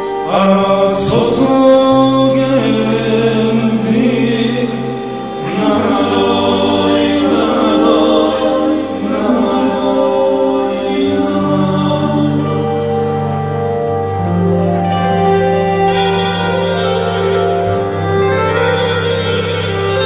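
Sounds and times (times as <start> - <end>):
man singing: 0.0 - 13.2
sustained keyboard chords: 0.0 - 20.0.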